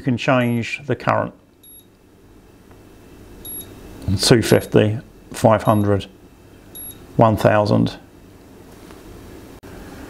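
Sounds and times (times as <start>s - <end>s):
short electronic beep: 3.4s - 3.7s, 6.8s - 7.0s.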